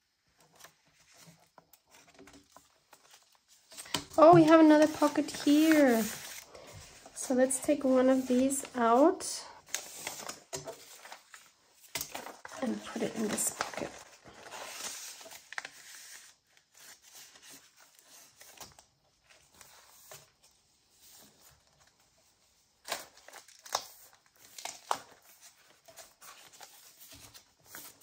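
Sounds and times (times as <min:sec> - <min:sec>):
paper rustling and sliding: 0:00.4 - 0:21.9.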